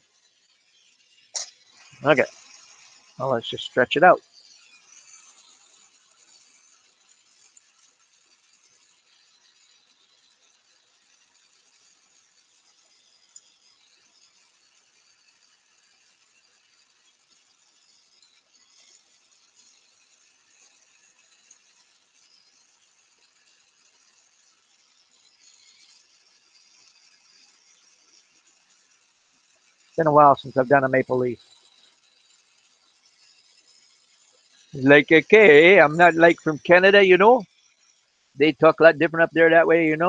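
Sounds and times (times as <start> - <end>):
torch flame hissing: 0.2 - 14.4, 15.8 - 40.0.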